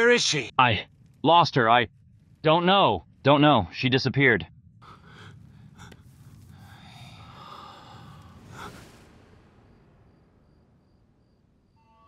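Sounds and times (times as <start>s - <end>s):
person exhaling heavily: 4.8s - 9.2s.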